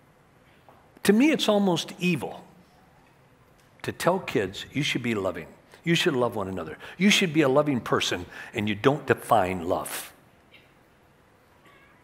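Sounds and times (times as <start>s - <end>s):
faint high-pitched squeaks: 11.4s - 12.0s.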